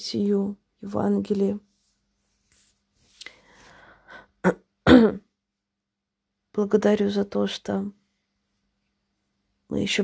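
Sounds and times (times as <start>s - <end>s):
woman clearing her throat: 4.4s - 5.3s.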